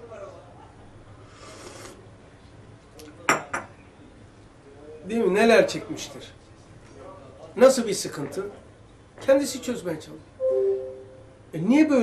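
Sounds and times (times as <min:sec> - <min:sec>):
teacup clinking on saucer: 0:03.3 - 0:03.7.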